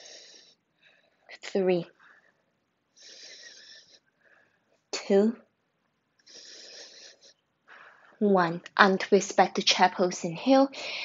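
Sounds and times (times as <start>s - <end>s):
person breathing: 0.0s - 1.3s, 2.0s - 4.8s, 6.2s - 8.2s, 10.8s - 11.0s.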